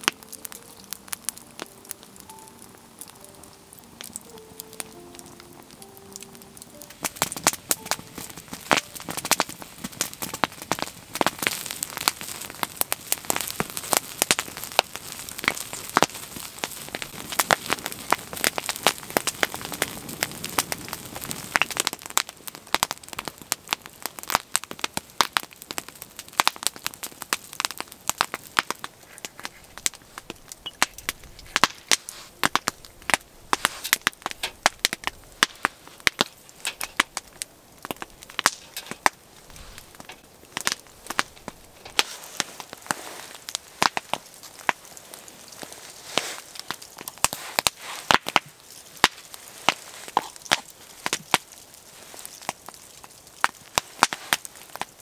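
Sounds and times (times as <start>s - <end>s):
log fire crackling and popping: 0.0s - 55.0s.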